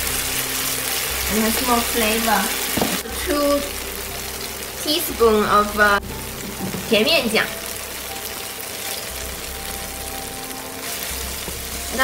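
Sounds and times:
sauce sizzling in oil: 0:00.0 - 0:12.0.

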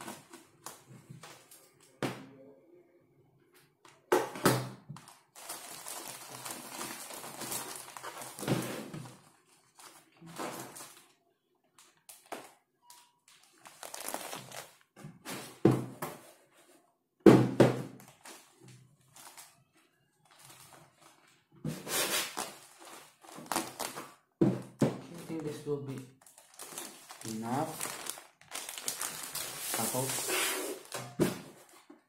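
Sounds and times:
plastic bag rustling: 0:05.0 - 0:11.2, 0:13.3 - 0:15.0, 0:18.0 - 0:24.2, 0:25.1 - 0:32.0.

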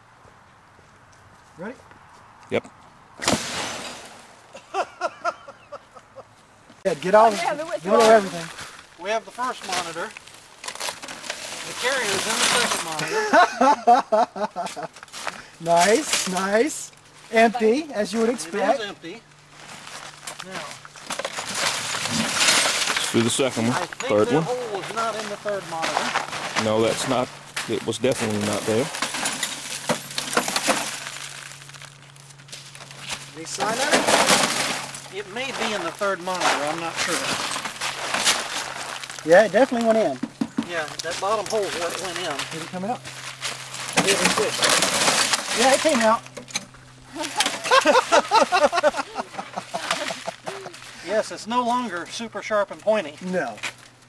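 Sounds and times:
man laughing: 0:04.5 - 0:06.4, 0:12.9 - 0:15.0, 0:47.1 - 0:51.0
rustling on plastic tarp: 0:07.1 - 0:13.2, 0:19.5 - 0:23.9, 0:24.6 - 0:40.2, 0:40.8 - 0:46.2
glass and plastic crunching: 0:07.1 - 0:13.3, 0:19.6 - 0:48.5
person speaking: 0:23.0 - 0:28.9.

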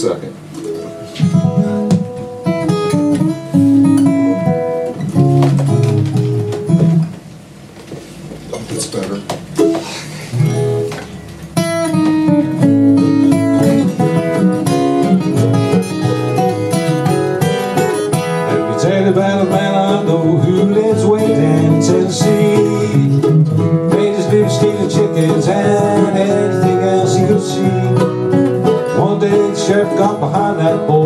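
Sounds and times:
acoustic guitars and mandolin: 0:00.4 - 0:07.2, 0:09.5 - 0:31.0.

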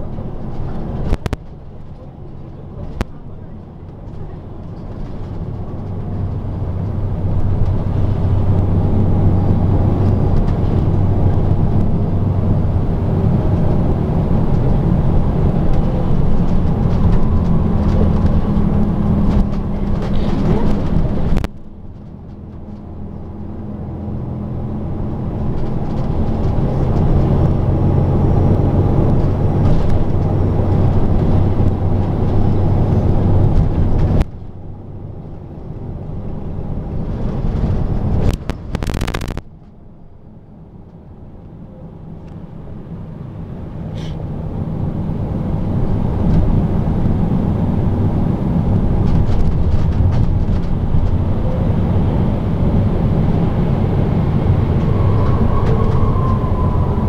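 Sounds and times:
bus diesel engine accelerating: 0:00.0 - 0:57.0.

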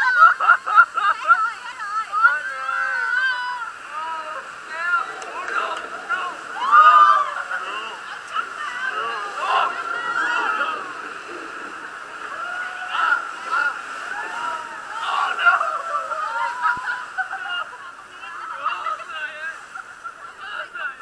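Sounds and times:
people calling out and exclaiming: 0:00.0 - 0:21.0
water sloshing and rushing: 0:00.0 - 0:21.0.

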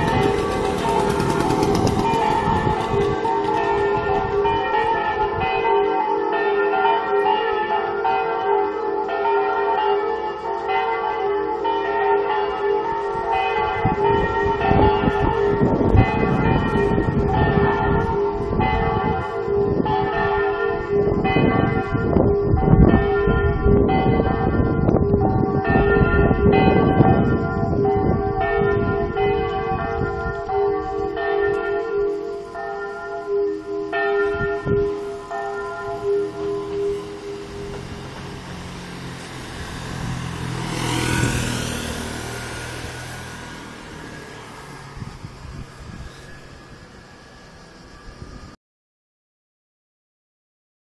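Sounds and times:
vehicle passing: 0:00.0 - 0:04.4, 0:34.9 - 0:48.4
church bells pealing over loudspeakers: 0:00.0 - 0:48.5.

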